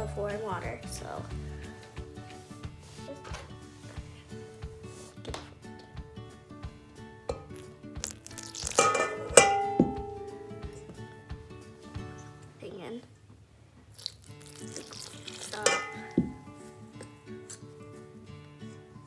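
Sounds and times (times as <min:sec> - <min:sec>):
soft background music: 0:00.0 - 0:19.0
fork clinking against metal bowl: 0:07.3 - 0:07.6, 0:08.4 - 0:10.0, 0:15.5 - 0:16.4
water pouring: 0:07.5 - 0:09.6, 0:14.0 - 0:16.4.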